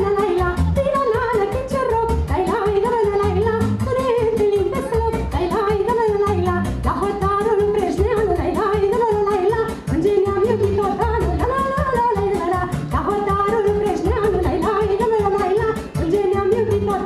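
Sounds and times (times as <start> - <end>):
band with dance beat: 0.0 - 17.0
woman singing folk song: 0.0 - 17.0.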